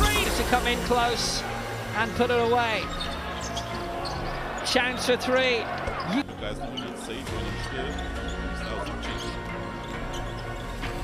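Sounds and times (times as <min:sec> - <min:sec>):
arena crowd noise: 0:00.0 - 0:10.0
music: 0:00.0 - 0:11.0.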